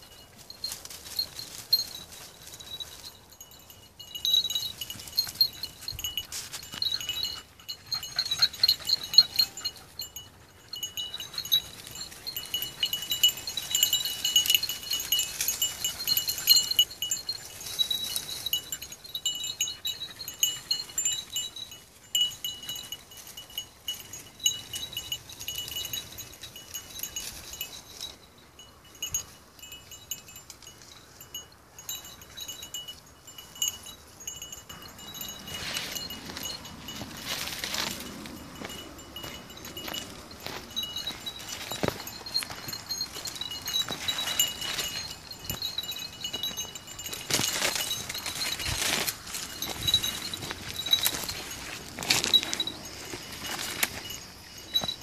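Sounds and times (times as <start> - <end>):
small metal bell jingling: 0.0 - 55.0.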